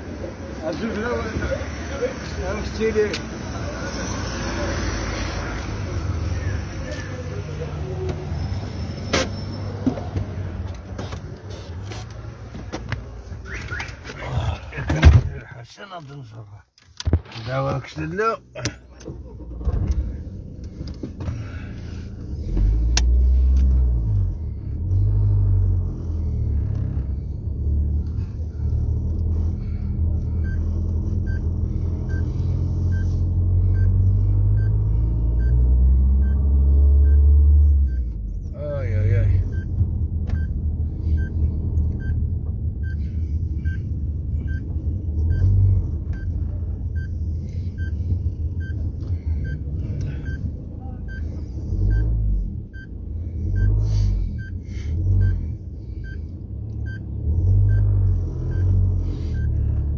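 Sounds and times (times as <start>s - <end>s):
car engine and road rumble: 0.0s - 59.9s
turn signal ticking: 39.4s - 43.0s, 43.6s - 59.9s.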